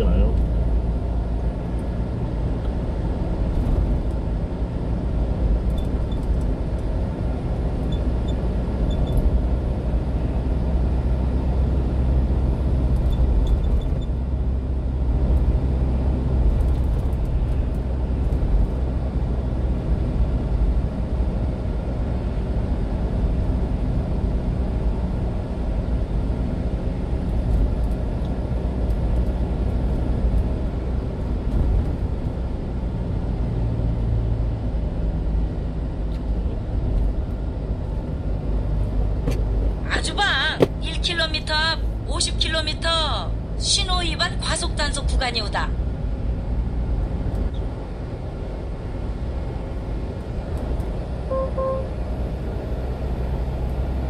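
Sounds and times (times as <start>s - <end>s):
truck engine and road noise: 0.0s - 54.0s.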